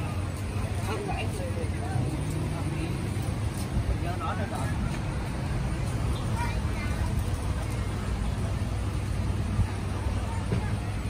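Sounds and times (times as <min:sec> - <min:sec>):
faint distant voices: 0:00.0 - 0:11.0
low street rumble: 0:00.0 - 0:11.0.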